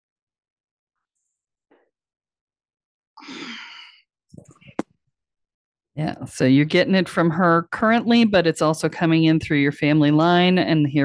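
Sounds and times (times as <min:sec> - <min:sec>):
woman sighing: 0:03.2 - 0:04.0.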